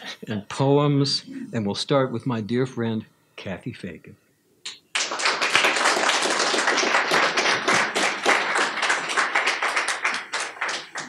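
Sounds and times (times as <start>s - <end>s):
audience applauding: 4.9s - 11.0s.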